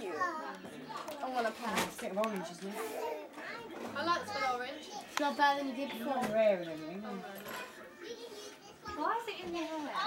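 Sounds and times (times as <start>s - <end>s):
faint chatter: 0.0s - 10.0s
small child's voice: 3.0s - 5.8s.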